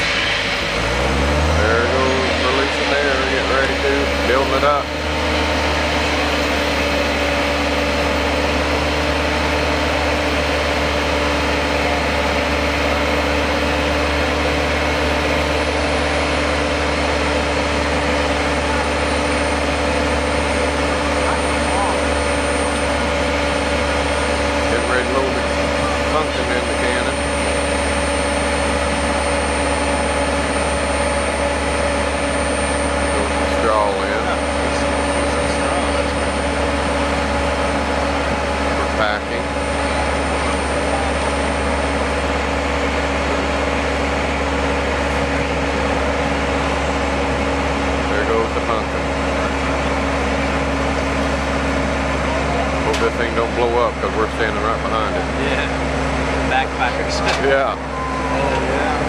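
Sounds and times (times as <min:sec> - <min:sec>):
engine humming steadily: 0:00.0 - 0:59.0
faint high whine: 0:56.6 - 0:59.0.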